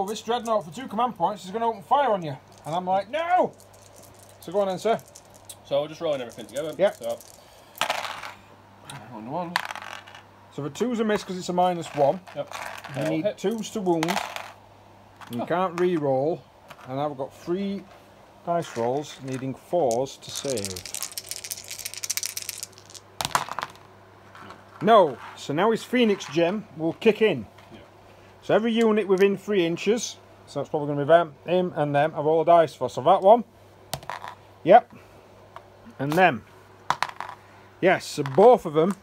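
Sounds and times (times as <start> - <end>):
dice clattering on table: 2.4 - 2.8, 3.4 - 8.4, 9.5 - 10.2, 11.1 - 14.6, 18.8 - 24.5, 33.9 - 34.4, 36.9 - 37.4, 38.2 - 39.0.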